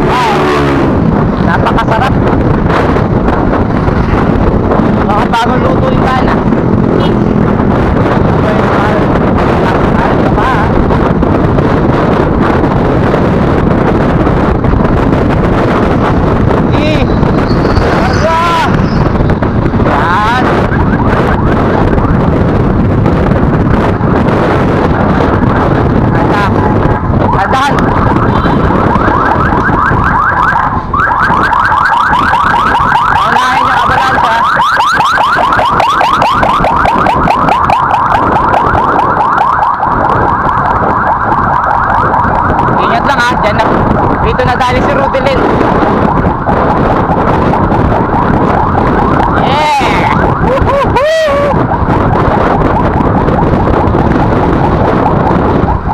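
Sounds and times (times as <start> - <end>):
wind buffeting microphone: 0.0 - 55.9
rapid pulsing tone: 14.6 - 55.9.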